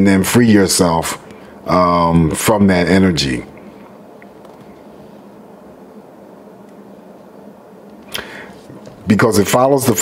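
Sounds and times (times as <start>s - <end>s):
person speaking: 0.0s - 3.8s, 8.1s - 10.0s
low room hum: 0.0s - 10.0s.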